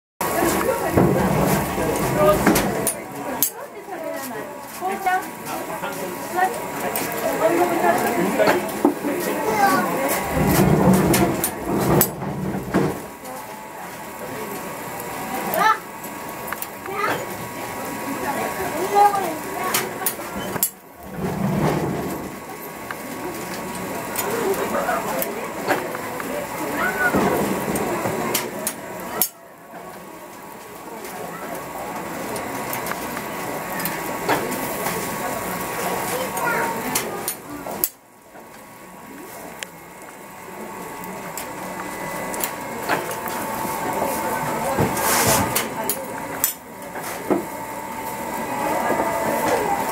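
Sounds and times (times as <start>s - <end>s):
baking machine running: 0.2s - 49.9s.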